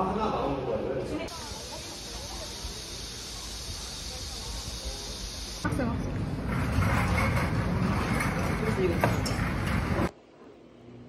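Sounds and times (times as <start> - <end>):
cicadas droning: 1.3 - 5.7.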